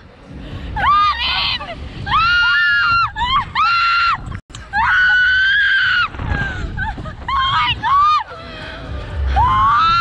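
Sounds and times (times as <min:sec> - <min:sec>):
low rush of wind: 0:00.0 - 0:10.0
young women screaming: 0:00.8 - 0:08.4, 0:09.3 - 0:10.0.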